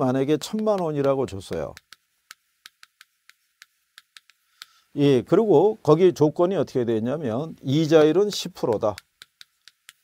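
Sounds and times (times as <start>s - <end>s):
chalk tapping on chalkboard: 0.2s - 4.8s, 7.9s - 10.0s.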